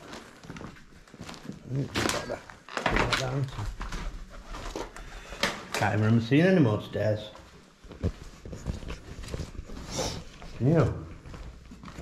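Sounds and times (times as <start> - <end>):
footsteps on rubble: 0.0 - 2.7, 7.3 - 12.0.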